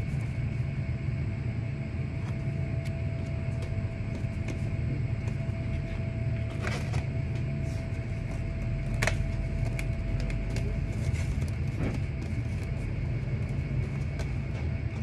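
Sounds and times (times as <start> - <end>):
constant hum: 0.0 - 15.0
low machinery rumble: 0.0 - 15.0.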